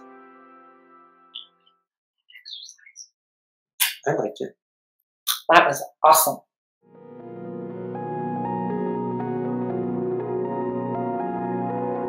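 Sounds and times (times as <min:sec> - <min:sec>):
faint high chirps: 0:02.3 - 0:03.1
kiss smack: 0:03.8 - 0:04.0.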